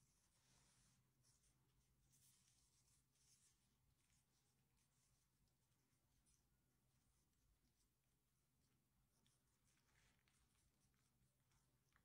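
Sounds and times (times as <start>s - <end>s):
faint rustles: 8.6s - 12.0s.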